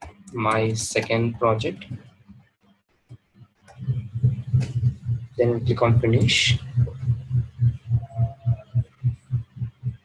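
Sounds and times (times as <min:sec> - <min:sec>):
pulsing low hum: 0:03.7 - 0:10.0.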